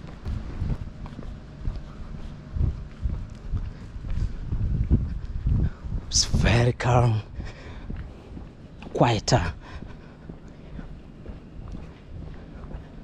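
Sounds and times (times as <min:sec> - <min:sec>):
footsteps on pavement: 0:00.0 - 0:13.0.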